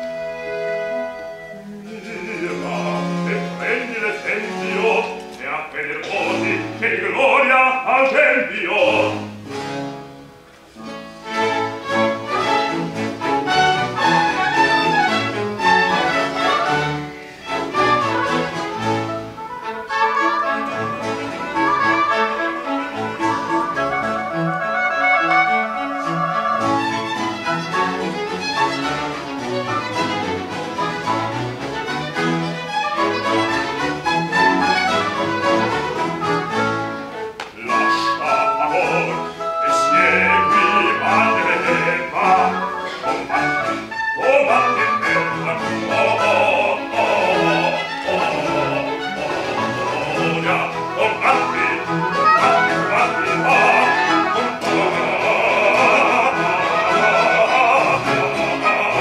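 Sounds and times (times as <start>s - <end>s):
bowed strings: 0.0s - 7.8s, 8.4s - 59.0s
harpsichord: 0.0s - 59.0s
lute: 0.0s - 59.0s.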